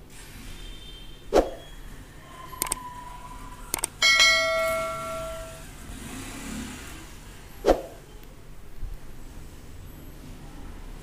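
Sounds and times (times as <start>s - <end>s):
mouse clicks: 2.6s - 2.8s, 3.7s - 4.0s
thin steady tone: 3.8s - 5.7s
bell chime ringing: 4.0s - 5.7s.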